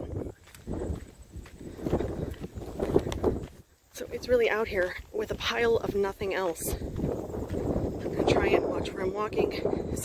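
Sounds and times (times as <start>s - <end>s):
footsteps on sandy dirt: 0.0s - 10.0s
wind rumbling on microphone: 0.0s - 10.0s.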